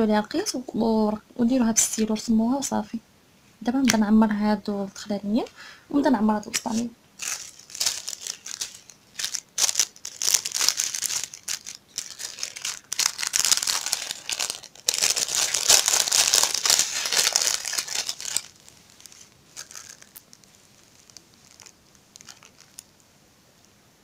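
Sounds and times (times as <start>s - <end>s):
plastic bag crinkling: 6.4s - 23.0s
plastic sheeting crinkling: 6.5s - 22.9s.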